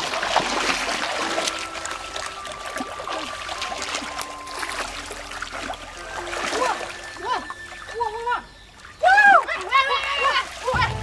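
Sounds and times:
water splashing in a stream: 0:00.0 - 0:11.0.

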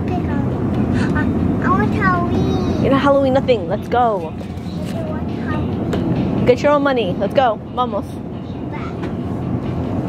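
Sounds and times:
supermarket background rumble: 0:00.0 - 0:10.0.

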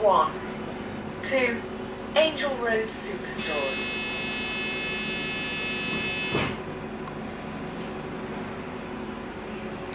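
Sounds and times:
high-pitched electrical whine: 0:03.3 - 0:06.6.

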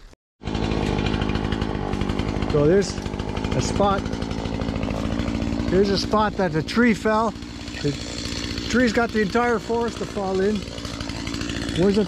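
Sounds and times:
small engine running: 0:00.4 - 0:12.0.

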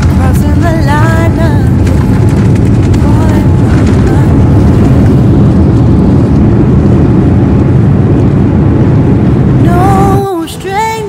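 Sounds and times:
airliner cabin rumble: 0:00.0 - 0:11.0.

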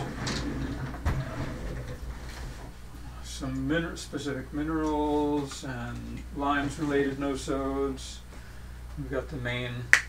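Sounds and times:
drawer sliding on runners: 0:00.0 - 0:02.7.

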